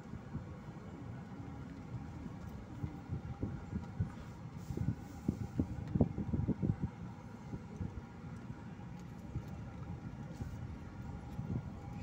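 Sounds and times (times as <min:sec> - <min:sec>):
car interior rumble: 0:00.0 - 0:12.0.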